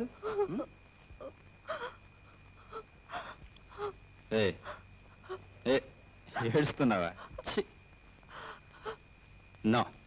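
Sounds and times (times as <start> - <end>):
woman sobbing and gasping: 0.0 - 4.0, 4.6 - 5.6, 8.3 - 9.1.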